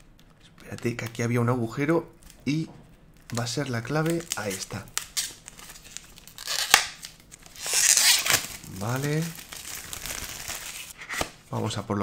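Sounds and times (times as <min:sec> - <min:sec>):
plastic shrink-wrap crackling: 0:03.2 - 0:11.0
shrink-wrap tearing: 0:03.3 - 0:11.3.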